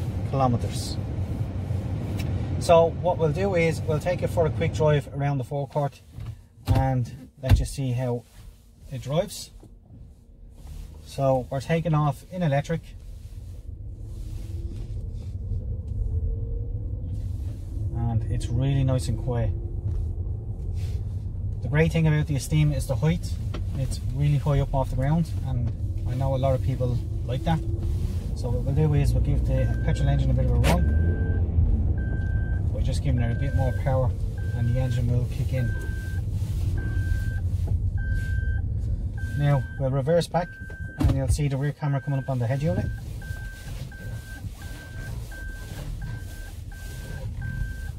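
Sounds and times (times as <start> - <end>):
low rumble of tyres and drivetrain: 0.0 - 47.9
reverse warning beeps: 29.6 - 31.4, 32.0 - 32.6, 33.2 - 39.8, 40.4 - 41.1, 42.0 - 47.9.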